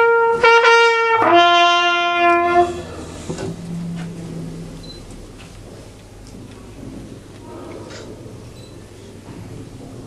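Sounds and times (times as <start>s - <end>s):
trumpet long note: 0.0s - 4.8s.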